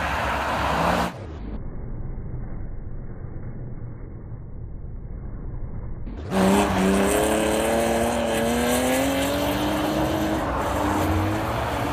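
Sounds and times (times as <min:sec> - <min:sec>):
race car engine revving: 0:06.1 - 0:11.9.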